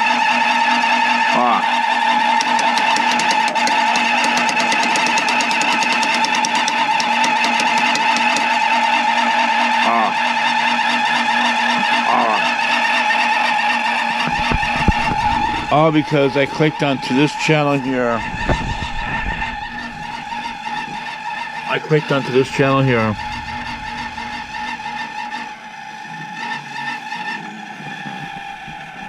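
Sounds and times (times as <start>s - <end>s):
heater fan humming and whining: 0.0s - 29.0s.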